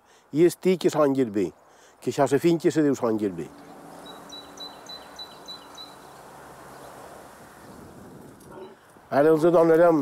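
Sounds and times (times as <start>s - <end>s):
breeze rustling: 2.7s - 9.9s
small bird chirping: 3.5s - 7.9s.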